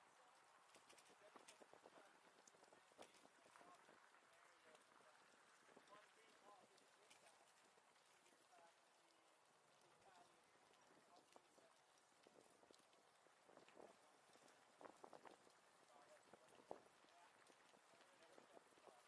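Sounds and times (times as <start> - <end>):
faint voices: 0.0 - 19.0.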